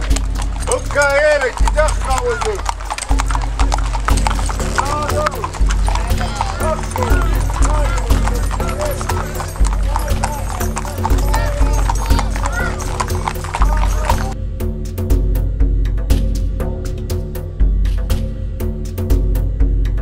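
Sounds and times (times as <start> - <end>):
horse hooves clopping on pavement: 0.0 - 14.4
voices: 0.0 - 14.4
music: 0.0 - 20.0.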